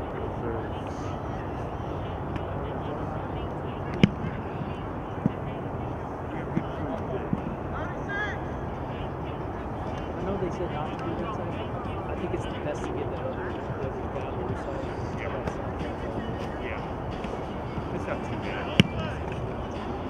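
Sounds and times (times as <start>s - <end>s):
distant players talking: 0.0s - 20.0s.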